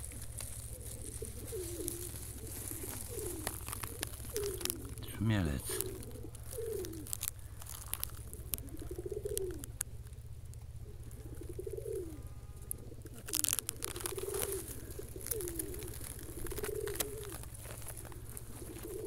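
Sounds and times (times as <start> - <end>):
sharp clicks and rustles: 0.0 - 10.7, 12.7 - 19.0
dove cooing: 0.0 - 19.0.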